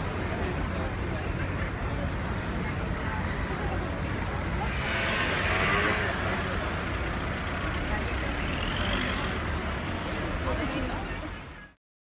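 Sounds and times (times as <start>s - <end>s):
people talking: 0.0s - 5.1s, 5.7s - 11.8s
cars driving slowly past: 0.0s - 11.6s.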